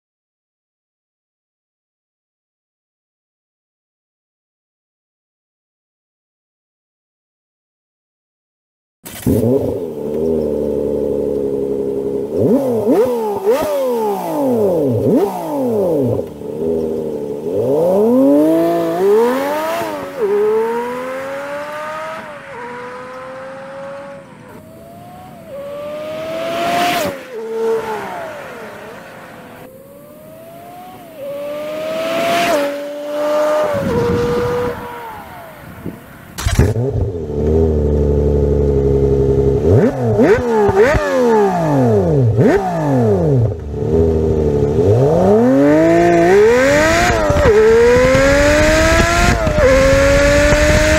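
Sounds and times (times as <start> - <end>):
car engine revving: 9.1 - 50.9
sports car accelerating through upshifts: 9.1 - 50.9.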